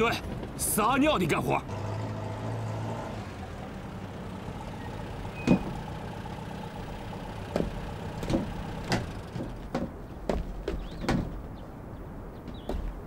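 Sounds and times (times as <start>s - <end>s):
truck engine idling: 1.4s - 10.2s.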